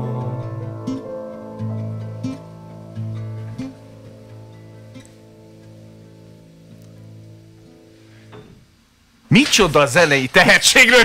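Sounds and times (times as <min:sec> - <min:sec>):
piano and acoustic guitar chord: 0:00.0 - 0:08.7.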